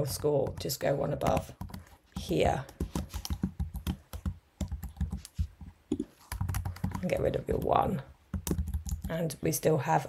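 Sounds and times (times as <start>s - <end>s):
typing on computer keyboard: 0.0s - 5.5s, 6.2s - 9.1s.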